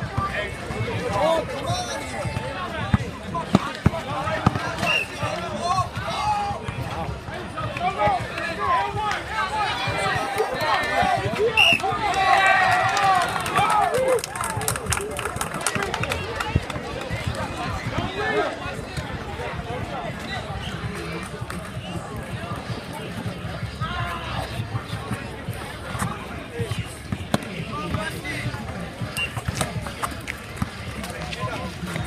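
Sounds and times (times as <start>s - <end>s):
crowd talking and shouting: 0.0s - 32.0s.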